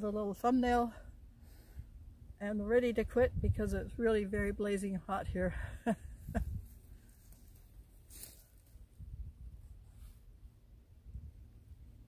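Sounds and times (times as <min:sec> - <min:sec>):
woman laughing: 0:05.6 - 0:06.6.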